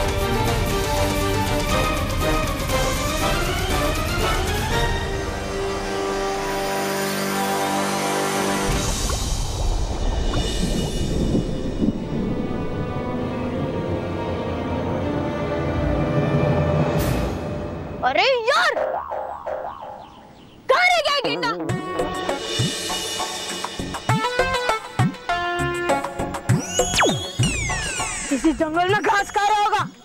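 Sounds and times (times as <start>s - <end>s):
dramatic sustained score: 0.0s - 18.0s
cartoon boing sound effect: 18.8s - 20.2s.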